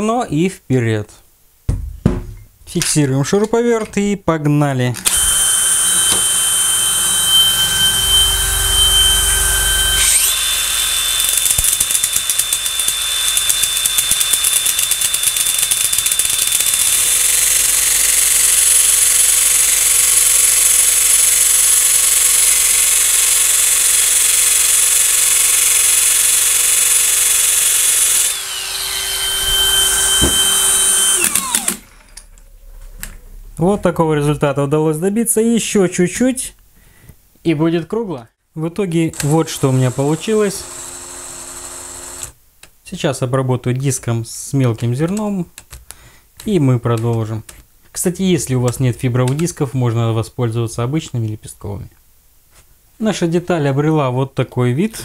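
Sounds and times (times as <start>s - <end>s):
cordless drill whining: 5.0s - 32.4s, 39.1s - 42.4s
angle grinder grinding metal: 5.1s - 33.7s, 39.2s - 42.3s.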